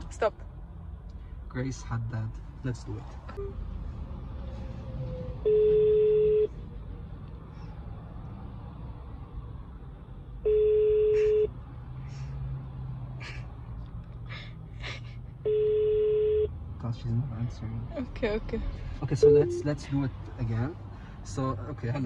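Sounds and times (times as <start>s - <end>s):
phone ringback tone: 19.2s - 19.8s.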